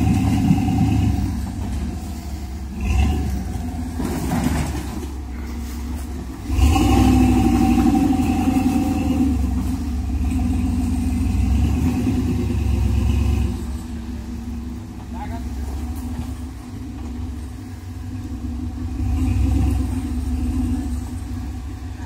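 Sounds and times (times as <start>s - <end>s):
truck engine revving: 0.0s - 22.0s.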